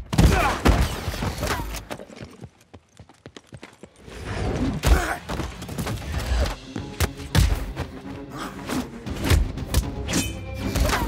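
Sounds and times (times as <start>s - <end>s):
film sound effects: 4.0s - 11.0s.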